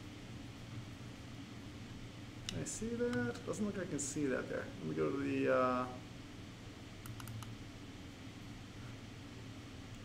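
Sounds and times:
low room hum: 0.0s - 10.0s
computer mouse clicks: 7.0s - 7.6s.

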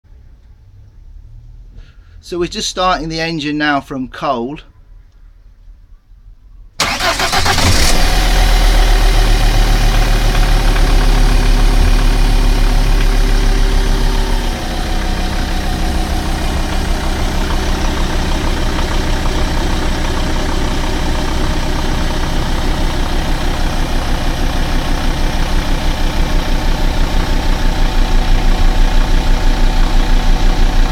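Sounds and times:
boat engine starting and idling: 6.8s - 30.9s.

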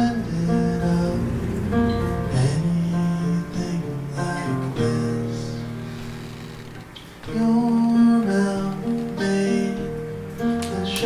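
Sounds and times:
man singing: 0.0s - 5.8s, 7.2s - 11.0s
acoustic guitar playing: 0.0s - 6.1s.

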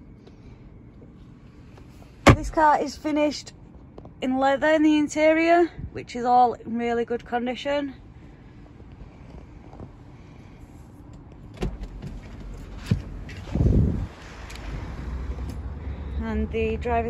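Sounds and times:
low rumble from outside: 0.0s - 17.0s
car door thump: 2.2s - 2.7s
car door latch clicks: 2.3s - 2.6s.

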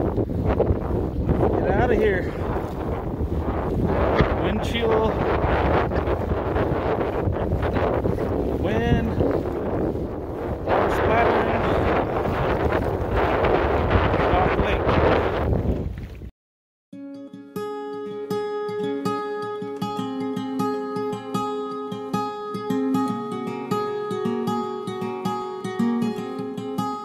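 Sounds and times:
gusty wind buffeting microphone: 0.0s - 16.3s
acoustic guitar plucked notes: 16.9s - 27.0s.

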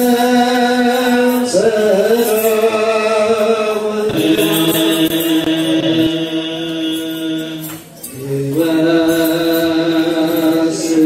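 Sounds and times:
group chanting a hymn: 0.0s - 11.0s.

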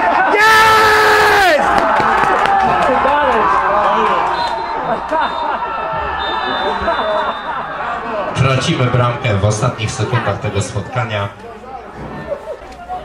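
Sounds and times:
people shouting and cheering: 0.0s - 13.0s
long held yell: 0.1s - 1.6s.

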